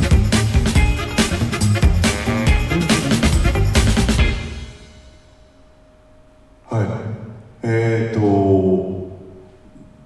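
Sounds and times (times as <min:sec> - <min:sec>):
man speaking over a microphone: 0:06.7 - 0:09.2.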